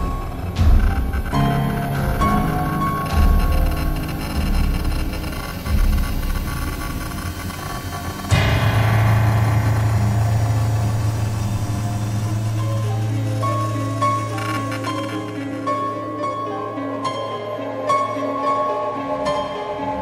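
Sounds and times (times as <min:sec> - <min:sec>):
low rumble: 0:00.0 - 0:15.0
steady low tone: 0:00.0 - 0:17.5
crash-like hit ringing: 0:08.4 - 0:12.6.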